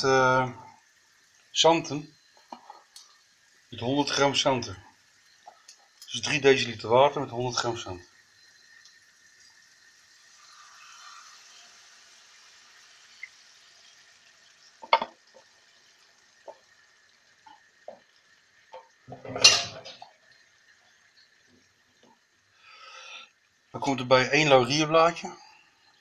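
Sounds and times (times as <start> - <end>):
liquid poured into frying wok: 7.6 - 22.4
kitchenware clinks and knocks: 14.8 - 15.1, 19.1 - 20.0
loud kitchenware clatter: 19.1 - 20.0.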